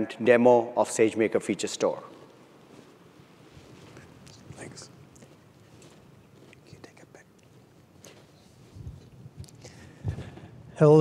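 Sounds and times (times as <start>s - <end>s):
person whispering: 6.6s - 7.3s.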